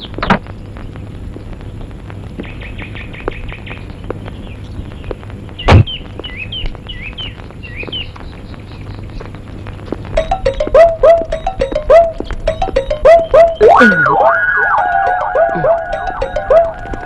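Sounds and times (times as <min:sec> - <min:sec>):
birds chirping: 0:00.0 - 0:17.0
loud thud: 0:05.7 - 0:05.9.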